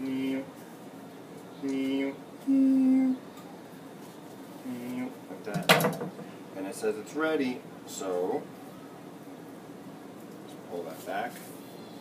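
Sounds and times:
man humming: 1.6 - 3.3.

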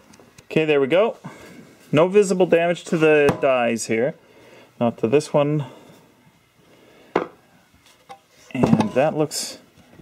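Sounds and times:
low workshop background: 0.0 - 10.0.

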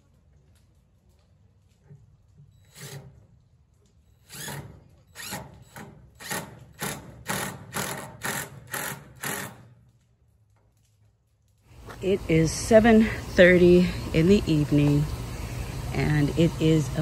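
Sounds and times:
cordless drill pulses: 2.4 - 3.2, 4.2 - 9.7.

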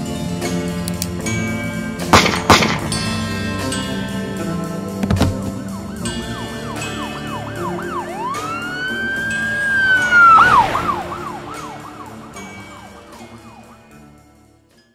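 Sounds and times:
background music: 0.0 - 14.9
emergency vehicle siren: 2.9 - 14.6
sharp hit: 9.5 - 13.9.

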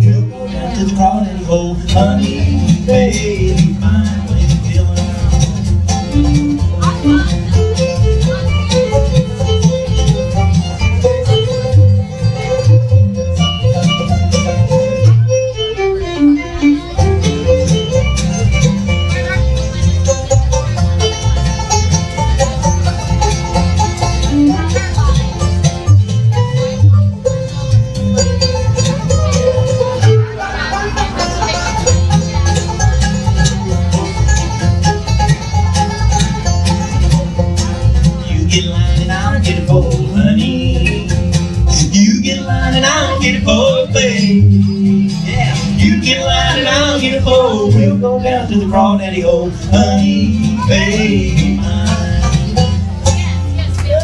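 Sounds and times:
acoustic guitar: 0.0 - 54.0
banjo: 0.0 - 54.0
fiddle: 0.0 - 54.0
upright bass: 0.0 - 54.0.

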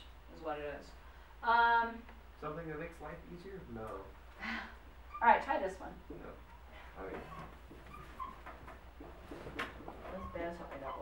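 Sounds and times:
low room hum: 0.0 - 11.0
marker squeaking on glass board: 6.4 - 8.8, 10.1 - 11.0.

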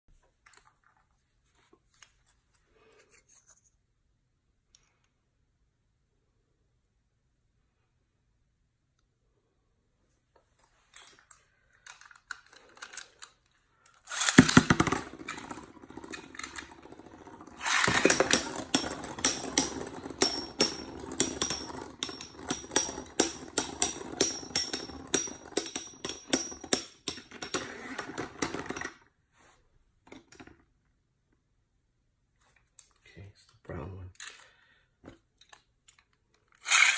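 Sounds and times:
spinning tops whirring: 14.0 - 28.8, 36.6 - 36.9
spinning tops clacking: 14.1 - 27.7, 36.6 - 36.9.

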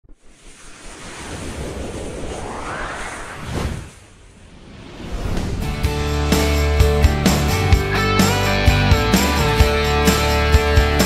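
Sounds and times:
rushing whoosh: 0.1 - 7.0.

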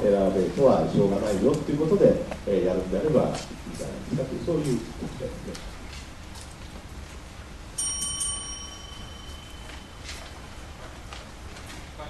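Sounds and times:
small metal bell ringing: 7.8 - 10.4.

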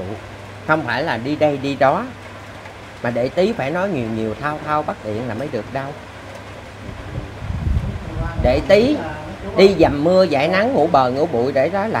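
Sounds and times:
wind rumbling on microphone: 6.0 - 10.5.

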